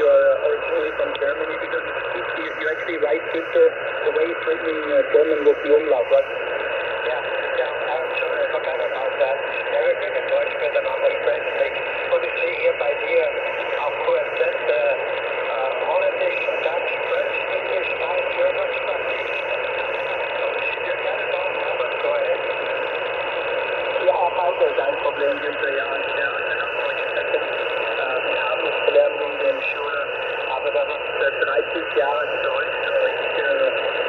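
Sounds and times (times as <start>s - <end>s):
radio hiss: 0.0s - 34.0s
voice over shortwave radio: 0.0s - 34.0s.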